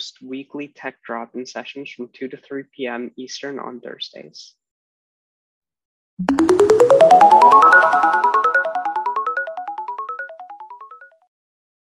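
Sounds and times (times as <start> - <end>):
electronic logo jingle: 6.2 - 10.9.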